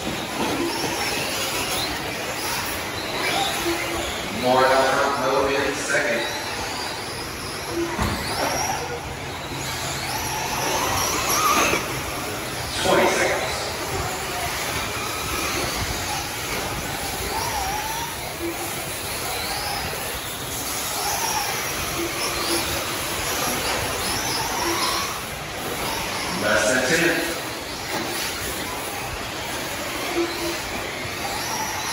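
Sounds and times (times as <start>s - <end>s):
rc car motors whining: 0.0s - 31.9s.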